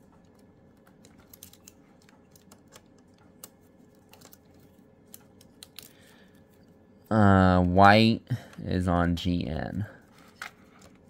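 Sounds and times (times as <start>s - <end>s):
rustling of telephone wires: 0.0s - 7.7s, 9.8s - 11.0s
light clicks of wires: 0.1s - 6.1s.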